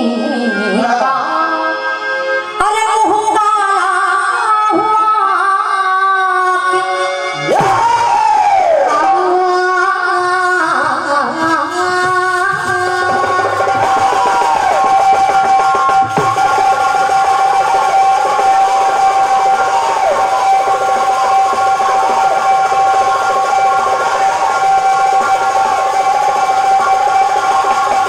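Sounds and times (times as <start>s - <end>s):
drumming: 7.5s - 8.5s, 11.2s - 28.0s
held drone note: 10.9s - 28.0s
gliding melody: 11.0s - 28.0s.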